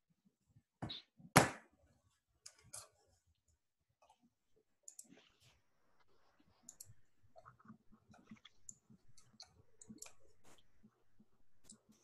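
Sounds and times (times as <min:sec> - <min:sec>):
faint irregular clicks: 0:02.4 - 0:05.4, 0:06.0 - 0:12.0.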